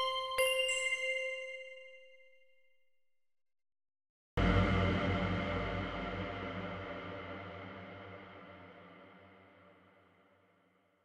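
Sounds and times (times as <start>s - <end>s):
bell-like chime note: 0.0s - 2.4s.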